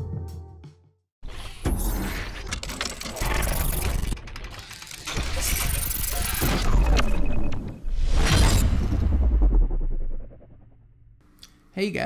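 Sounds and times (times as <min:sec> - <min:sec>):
music: 0:00.0 - 0:01.1.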